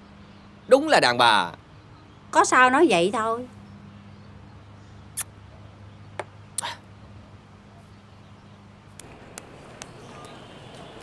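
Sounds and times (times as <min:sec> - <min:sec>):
steady low hum: 0:08.8 - 0:11.0.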